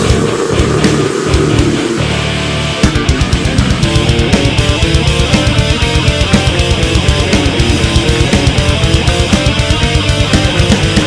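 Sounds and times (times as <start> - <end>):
distorted electric guitars: 0.0 - 11.0
drums: 0.0 - 11.0
kick drum strokes: 2.8 - 11.0.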